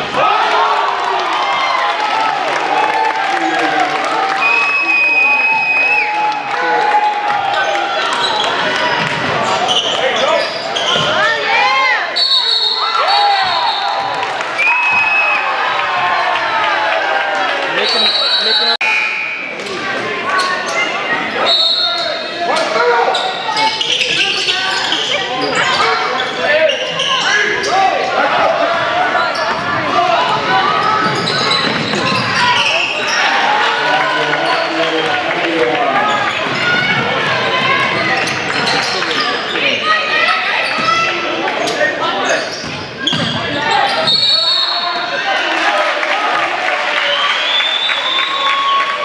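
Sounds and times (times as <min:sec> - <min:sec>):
voices in gym: 0:00.0 - 0:49.0
referee's whistle: 0:04.4 - 0:06.2, 0:12.1 - 0:14.0, 0:17.8 - 0:19.6, 0:21.4 - 0:22.2, 0:43.0 - 0:44.9, 0:47.1 - 0:48.9
basketball bouncing on court: 0:42.6 - 0:43.6.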